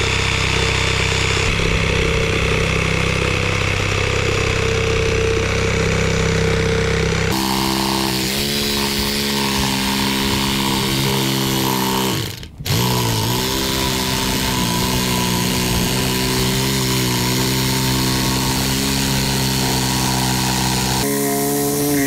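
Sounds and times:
reciprocating saw cutting rubber: 0.0s - 22.0s.

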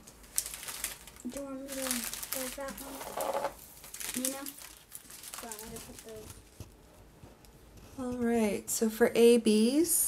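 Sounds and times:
small plastic bags crinkling: 0.0s - 6.9s
person talking: 1.2s - 3.4s, 4.2s - 4.6s, 5.4s - 6.3s.

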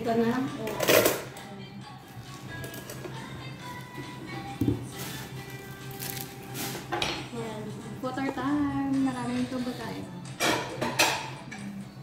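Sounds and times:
cutlery clinking against dishes: 0.7s - 1.4s, 6.9s - 7.4s, 10.3s - 11.8s.

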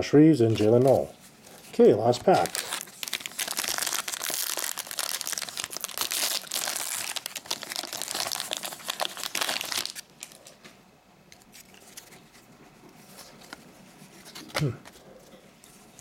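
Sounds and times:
card pack wrapper tearing and crinkling: 1.8s - 10.5s.

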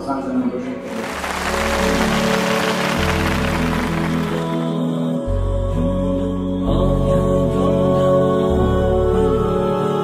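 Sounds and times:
sustained chords: 0.9s - 5.2s.

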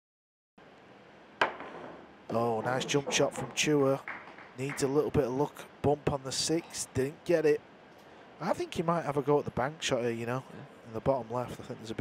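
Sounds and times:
pool cue striking ball: 1.4s - 5.0s.

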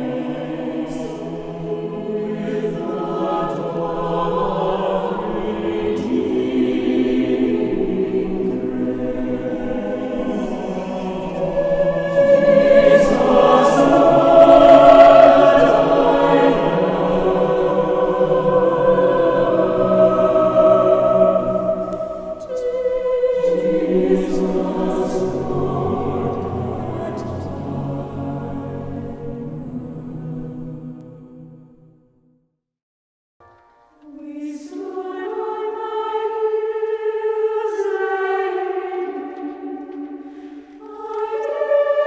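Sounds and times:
mixed choir singing: 0.0s - 31.6s, 34.0s - 42.0s.

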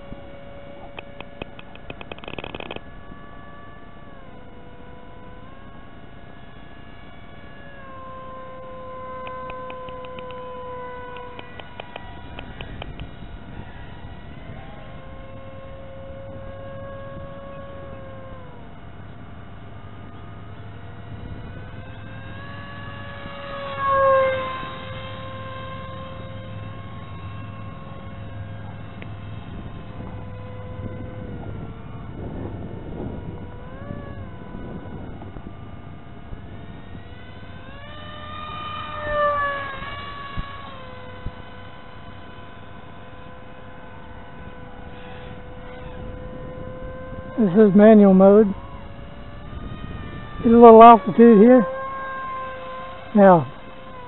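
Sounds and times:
motor and propeller whine: 0.0s - 54.0s.

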